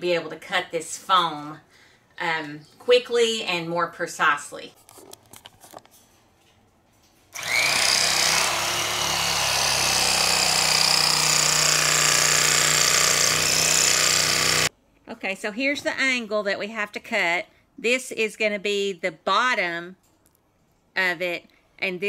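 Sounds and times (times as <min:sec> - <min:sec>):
blades sawing through foam: 0:07.4 - 0:14.7
electric carving knife motor hum: 0:07.4 - 0:14.7.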